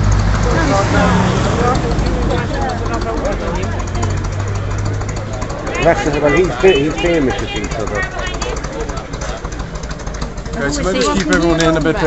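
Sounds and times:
lorry engine idling: 0.0s - 12.0s
chatter of voices: 0.4s - 12.0s.

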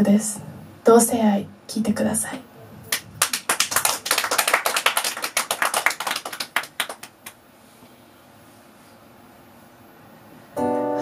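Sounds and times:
audience clapping: 2.9s - 7.3s.

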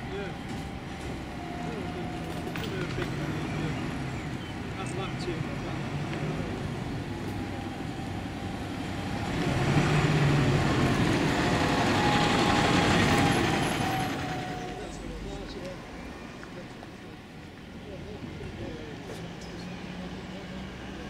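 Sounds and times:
bus engine driving past: 0.0s - 21.0s.

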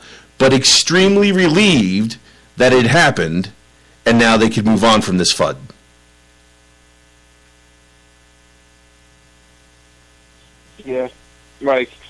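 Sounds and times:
steady electrical hum: 0.0s - 12.0s
man saying yeah: 10.8s - 12.0s.

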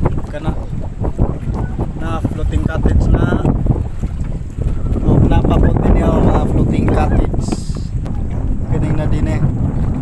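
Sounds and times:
boat engine rumbling: 0.0s - 10.0s
wind buffeting microphone: 0.0s - 10.0s.

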